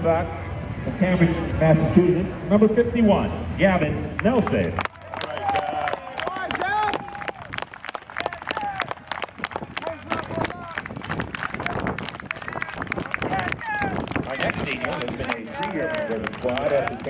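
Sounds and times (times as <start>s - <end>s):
cheering and calling voices: 4.2s - 17.0s
people clapping: 4.2s - 17.0s.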